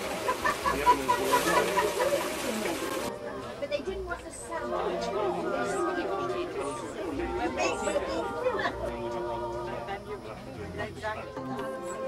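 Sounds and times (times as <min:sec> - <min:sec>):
overlapping conversation of group: 0:00.4 - 0:12.0.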